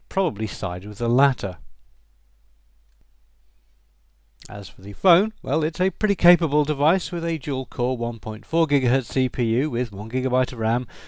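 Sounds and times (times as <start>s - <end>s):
faint click: 2.8s - 3.1s.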